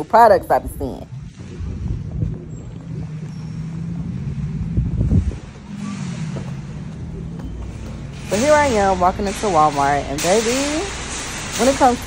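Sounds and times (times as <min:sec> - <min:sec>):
wind buffeting microphone: 0:00.0 - 0:10.3
low rumble: 0:00.0 - 0:10.4
steady low hum: 0:00.0 - 0:12.0.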